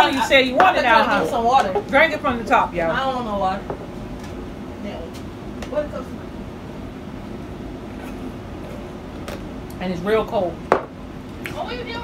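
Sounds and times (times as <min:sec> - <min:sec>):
woman speaking: 0:00.0 - 0:03.7, 0:09.8 - 0:10.6, 0:11.5 - 0:12.0
steady low hum: 0:00.0 - 0:12.0.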